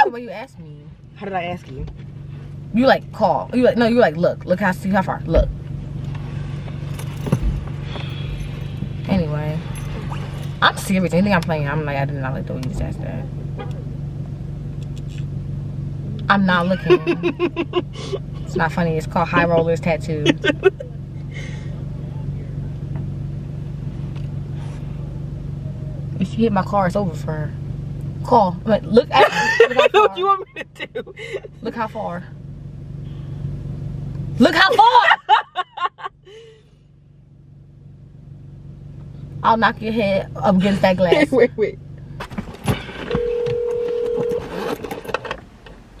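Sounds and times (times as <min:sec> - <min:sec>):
car engine idling: 0:00.0 - 0:46.0
phone ringback tone: 0:43.1 - 0:44.6.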